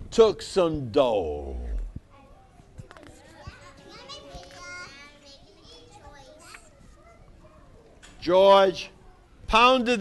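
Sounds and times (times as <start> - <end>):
children chattering: 2.1 - 8.1.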